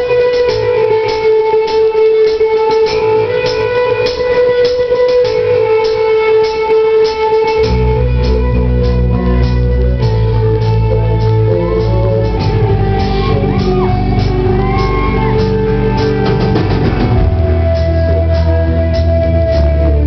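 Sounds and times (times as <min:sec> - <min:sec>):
guitar picked strokes: 0:00.0 - 0:20.0
rock band playing a ballad: 0:00.0 - 0:20.0
heavy low bass: 0:07.5 - 0:20.0.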